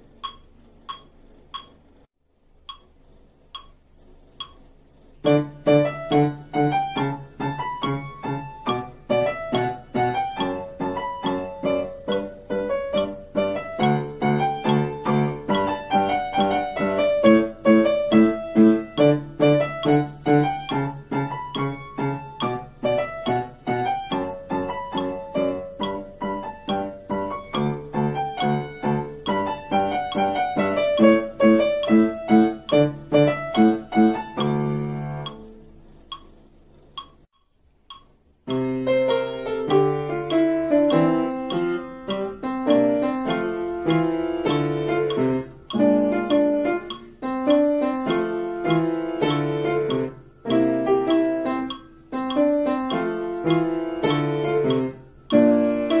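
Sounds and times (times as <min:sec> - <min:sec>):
upright piano playing: 0:05.2 - 0:36.3, 0:38.4 - 0:56.0.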